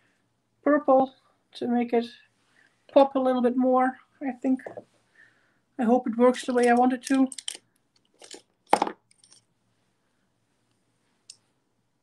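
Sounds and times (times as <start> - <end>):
makeup items clacking: 6.6 - 9.5.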